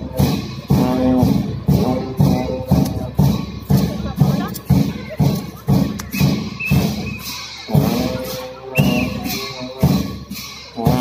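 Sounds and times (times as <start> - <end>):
large drum beats: 0.0 - 11.0.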